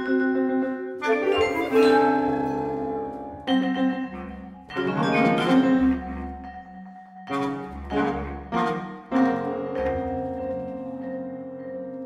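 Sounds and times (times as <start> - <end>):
chamber ensemble playing: 0.3 - 11.4
loud ensemble chords: 1.0 - 6.3.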